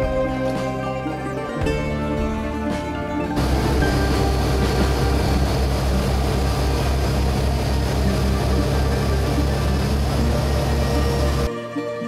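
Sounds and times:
boat engine droning: 3.4s - 11.5s
wake rushing hiss: 3.4s - 11.5s.

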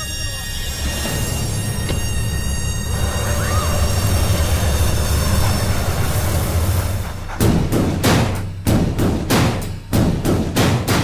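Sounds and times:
low drone: 0.0s - 10.0s
heavy drum hits: 7.1s - 11.0s.

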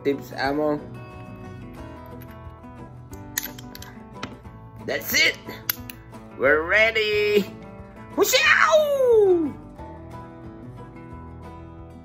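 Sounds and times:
background guitar music: 0.0s - 12.0s
cartridges clicking into revolver: 3.1s - 4.4s, 5.6s - 6.0s.

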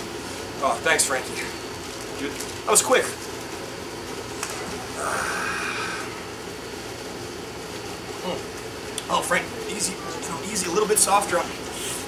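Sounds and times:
outdoor background hiss and rumble: 0.0s - 12.0s.

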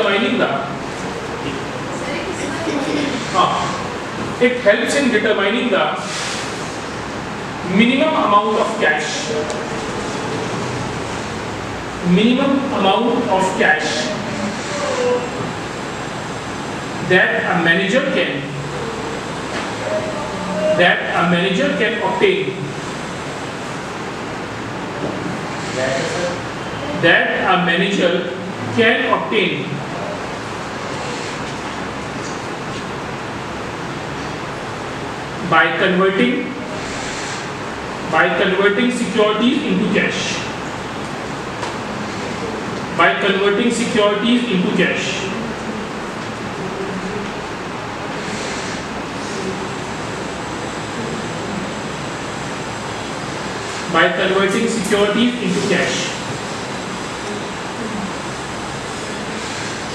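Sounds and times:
room noise hiss: 0.0s - 59.9s.

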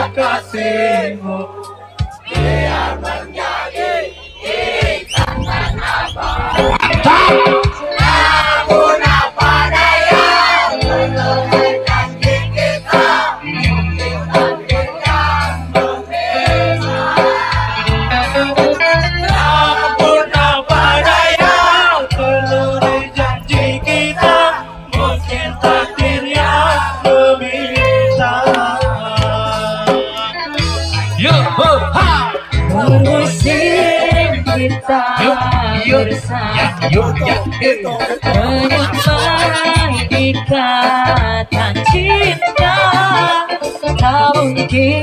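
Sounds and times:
crowd shouting and singing along: 0.0s - 45.0s
live band music: 0.0s - 45.0s
steady bass notes: 0.0s - 45.0s.

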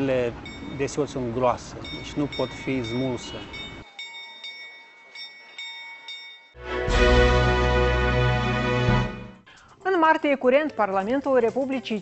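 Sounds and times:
small bell ringing: 0.4s - 0.9s, 1.8s - 6.6s.

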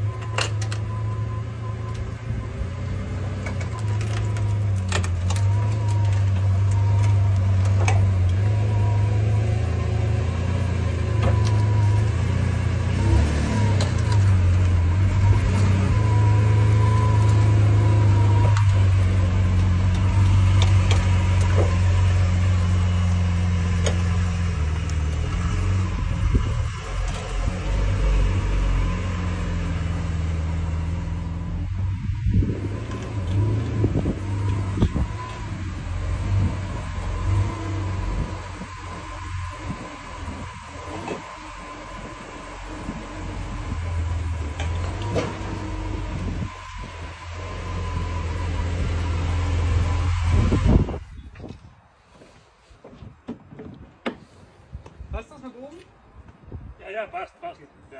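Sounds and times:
car engine deep drone: 0.0s - 51.0s.

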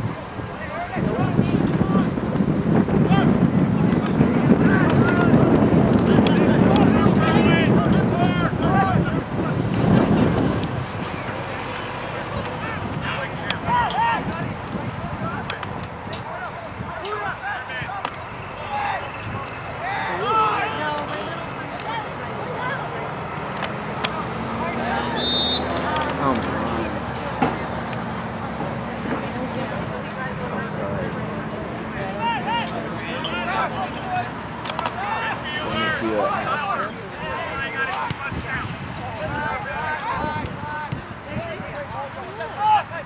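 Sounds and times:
wind buffeting microphone: 0.0s - 17.4s, 34.3s - 42.1s
people shouting and calling: 4.6s - 27.8s, 29.5s - 43.0s.

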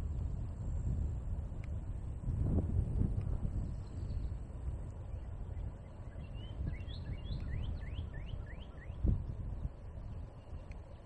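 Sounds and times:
low rumble of riding noise: 0.0s - 11.0s
bird singing whistled notes: 3.6s - 11.0s.

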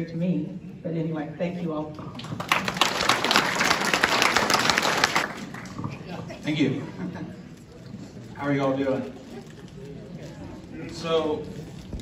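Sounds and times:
audience applauding: 2.1s - 5.8s.

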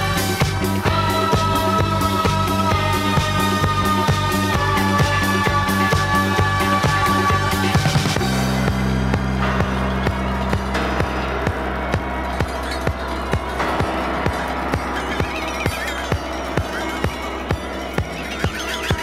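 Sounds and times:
latin disco music: 0.0s - 19.0s.

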